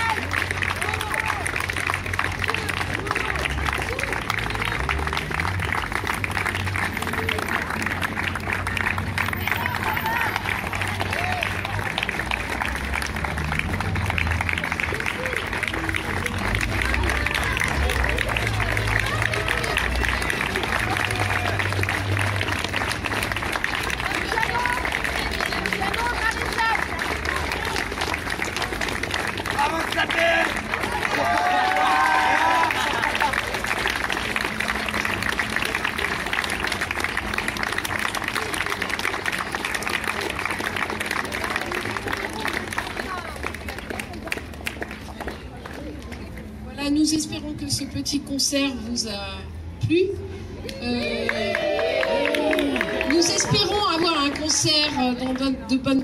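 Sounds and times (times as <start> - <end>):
crowd applauding: 0.0 - 46.6, 50.7 - 56.0
people clapping: 0.0 - 46.7, 50.6 - 56.0
voices: 14.0 - 35.6.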